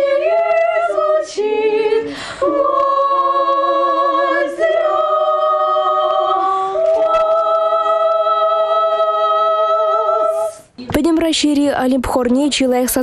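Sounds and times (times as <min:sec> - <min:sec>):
girls' choir singing a cappella: 0:00.0 - 0:10.6.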